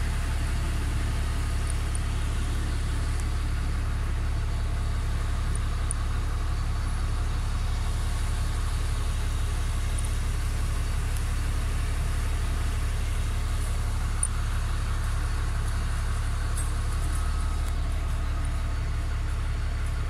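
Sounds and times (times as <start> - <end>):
city background rumble: 0.0 - 20.0.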